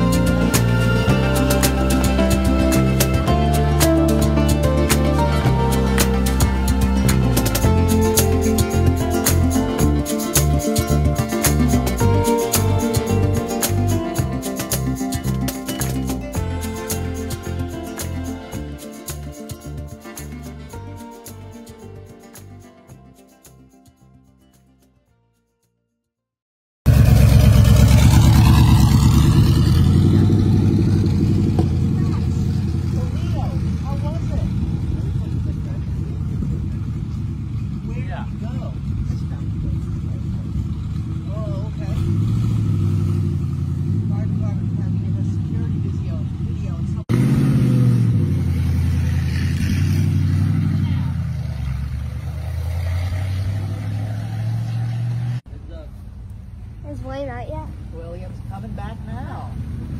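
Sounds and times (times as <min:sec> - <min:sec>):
racing car engine driving past: 0:26.9 - 0:55.5.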